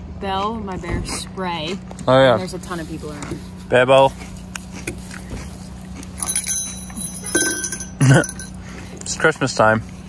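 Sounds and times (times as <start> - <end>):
small bell jingling: 6.2 - 8.6.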